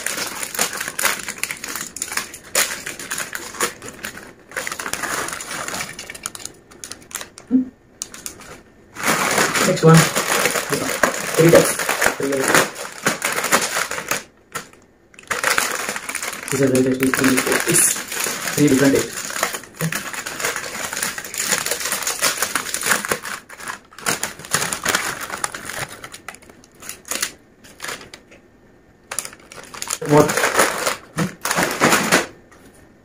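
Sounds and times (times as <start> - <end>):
plastic snack packet crackling: 0.0 - 7.4, 8.0 - 28.4, 29.0 - 32.3.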